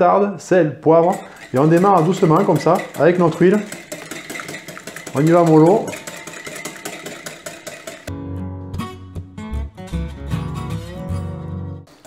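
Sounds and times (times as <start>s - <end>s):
acoustic guitar music: 1.2s - 12.0s.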